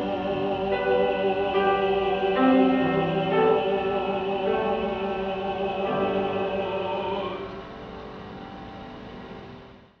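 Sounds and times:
choir chord reverberating: 0:00.0 - 0:08.1.

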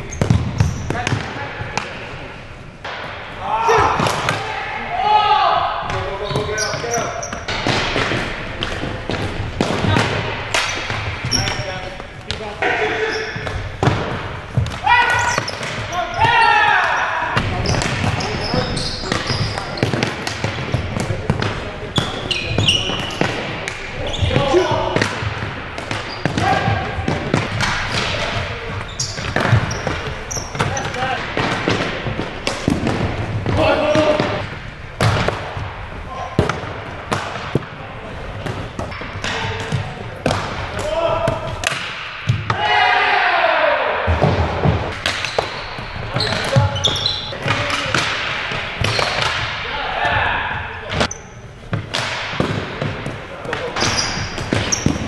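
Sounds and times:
hockey sticks and ball knocking: 0:00.0 - 0:02.1, 0:05.8 - 0:43.0, 0:44.1 - 0:50.3, 0:50.9 - 0:55.0
players shouting: 0:03.3 - 0:07.2, 0:14.6 - 0:20.0, 0:40.7 - 0:44.5, 0:46.2 - 0:51.1.

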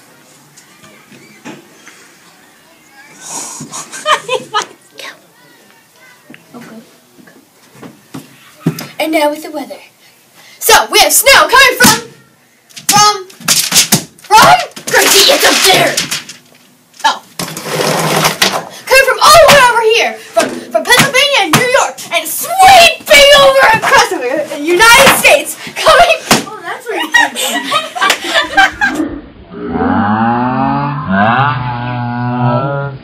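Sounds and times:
paper sheet rustling: 0:13.4 - 0:18.6
girl making low mock roar: 0:29.5 - 0:33.0.

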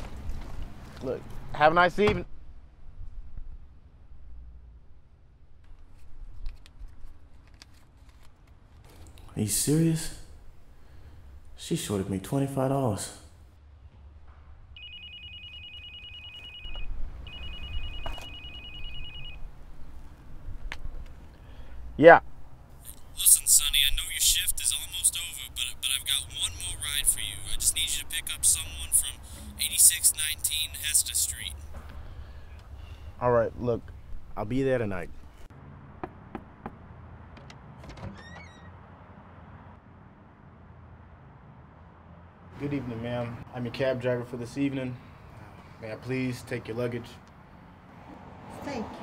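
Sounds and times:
trilling telephone ring: 0:14.8 - 0:19.4
door hinges creaking: 0:37.8 - 0:38.8.

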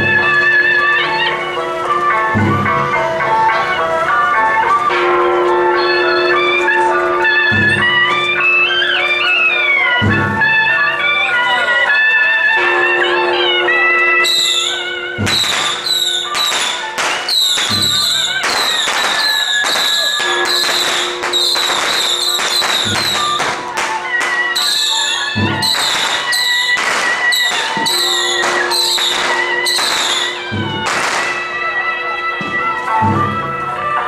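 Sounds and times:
cymbals and gongs clashing: 0:00.0 - 0:34.0
held wind instrument tone: 0:00.0 - 0:34.0.

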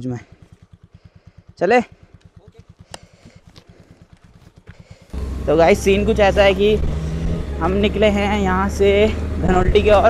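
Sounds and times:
scooter engine idling: 0:00.0 - 0:10.0.

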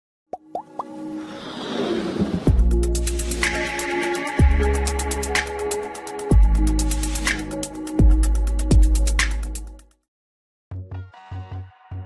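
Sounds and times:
rising whoosh: 0:01.0 - 0:03.2
electronic intro music: 0:02.1 - 0:09.5.

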